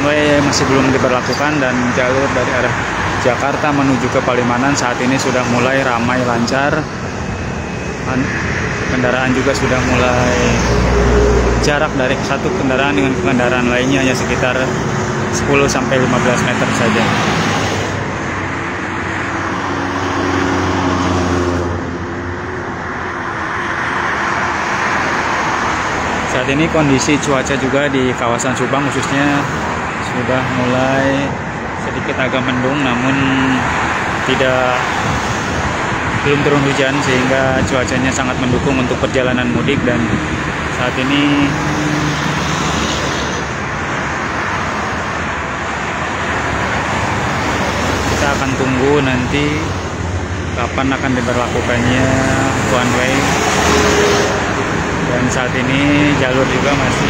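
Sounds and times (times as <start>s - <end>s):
cars and buses passing at speed: 0.0s - 57.0s
highway traffic rushing: 0.0s - 57.0s.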